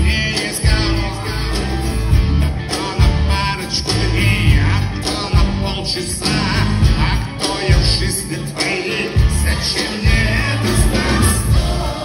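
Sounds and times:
loud live rock music: 0.0s - 12.0s
person singing: 0.0s - 12.0s.

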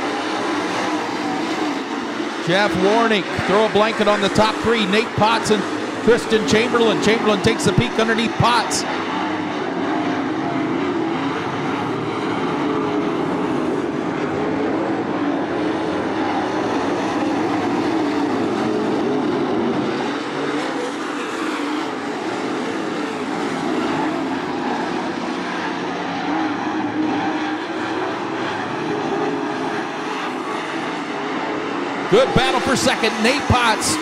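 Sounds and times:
race car engines droning: 0.0s - 34.0s.

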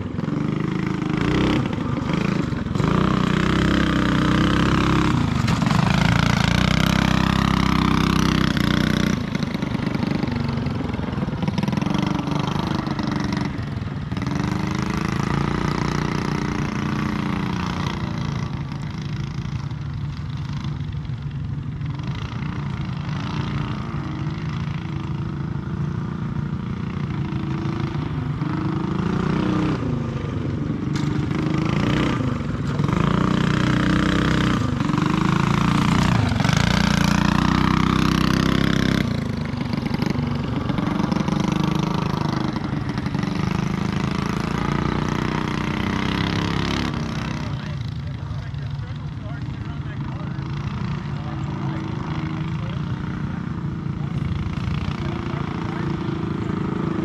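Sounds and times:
small kart engines racing: 0.0s - 57.0s.

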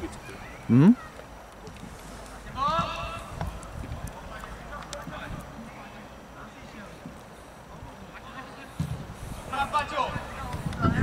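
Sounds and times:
open-air background noise: 0.0s - 11.0s.

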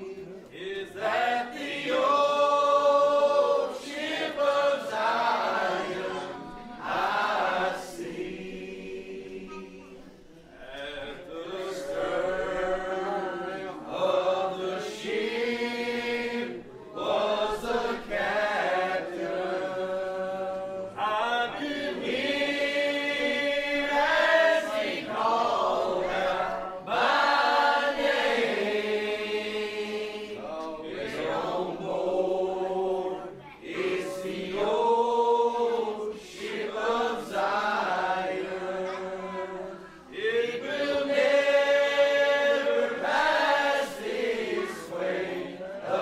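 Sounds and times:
congregation singing a hymn: 0.0s - 46.0s.

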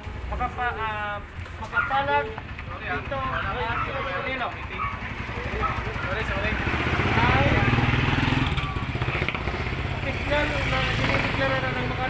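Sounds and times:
people talking: 0.3s - 9.0s, 10.0s - 12.0s
motorcycle engine running: 0.7s - 12.0s.

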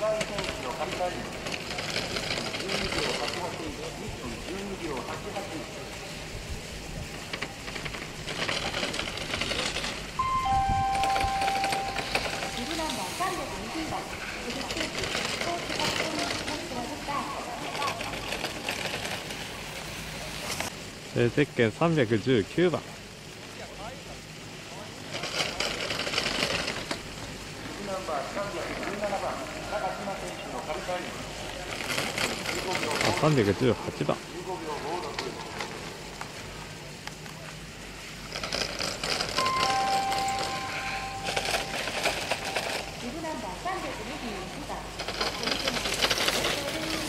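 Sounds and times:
skis scraping on snow: 0.0s - 20.8s, 45.0s - 47.0s
indistinct voices: 10.2s - 19.4s, 39.4s - 47.0s.

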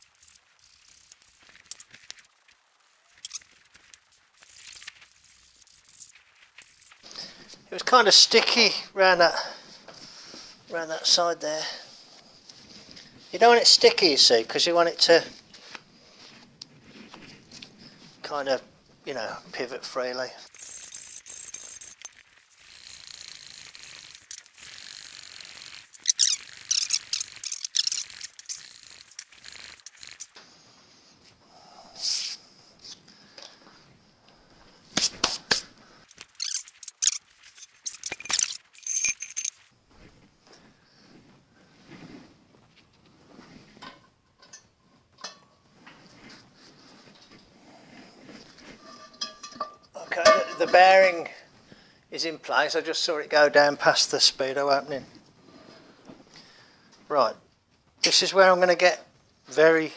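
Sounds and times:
rubbing and rustling: 0.0s - 7.7s
sharp metal knocks and clinks: 38.1s - 39.6s, 48.9s - 50.9s.

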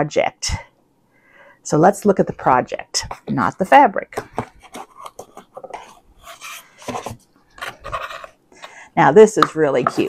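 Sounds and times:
paper rustling and scraping: 4.5s - 8.4s.

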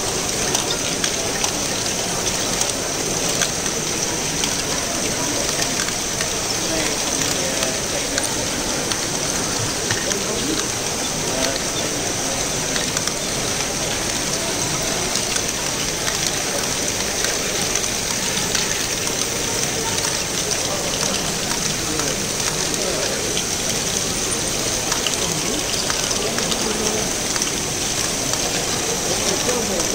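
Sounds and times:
hum of many voices: 0.0s - 29.9s.

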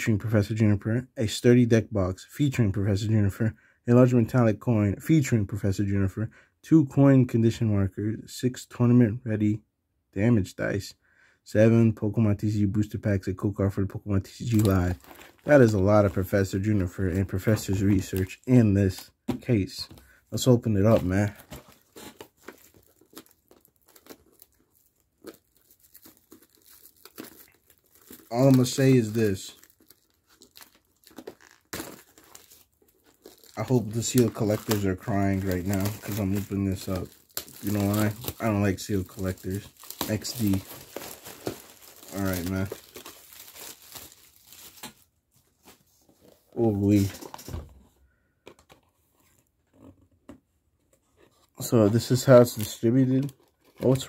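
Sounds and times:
plastic wrap crinkling and tearing: 14.4s - 19.0s, 19.8s - 45.1s, 51.6s - 54.0s.

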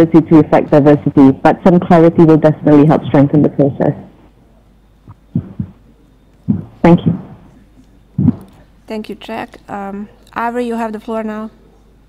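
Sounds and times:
woman speaking: 0.0s - 4.1s
soft thumps on microphone: 5.1s - 5.8s.

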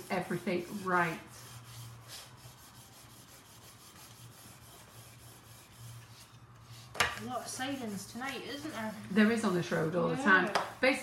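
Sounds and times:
smoothers scraping on cake: 0.0s - 11.0s.

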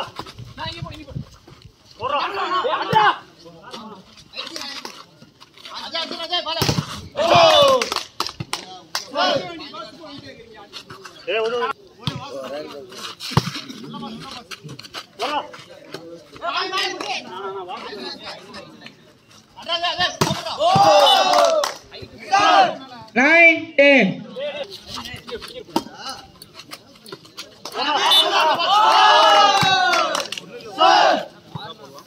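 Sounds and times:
men calling out: 19.6s - 23.6s, 27.7s - 31.4s.

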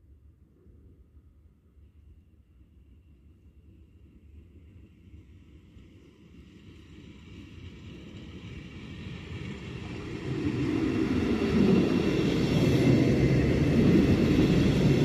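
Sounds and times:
train wheels rumbling on rails: 5.9s - 15.0s.

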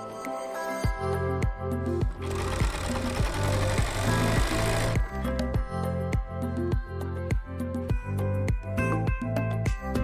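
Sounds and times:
background music with steady beat: 0.0s - 10.0s
sewing machine running: 2.2s - 5.0s.

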